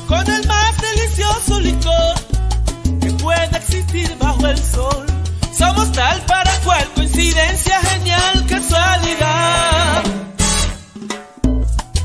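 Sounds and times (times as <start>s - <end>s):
romantic salsa music: 0.0s - 12.0s.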